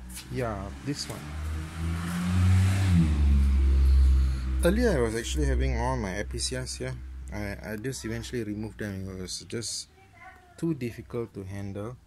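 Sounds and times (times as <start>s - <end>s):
vehicle engine rumbling: 0.0s - 9.6s.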